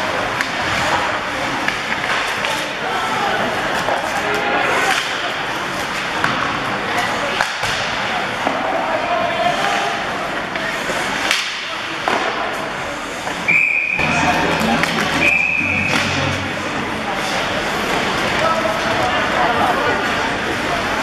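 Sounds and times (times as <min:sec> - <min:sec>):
hockey sticks and puck clacking: 0:00.0 - 0:08.9, 0:09.5 - 0:16.5
spectators' voices: 0:00.0 - 0:21.0
referee's whistle: 0:13.5 - 0:14.1, 0:15.1 - 0:16.2.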